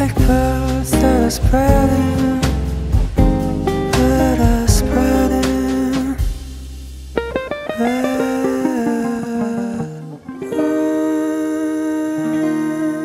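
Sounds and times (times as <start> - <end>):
acoustic guitar plucked and strummed: 0.0 - 6.5, 7.1 - 13.0.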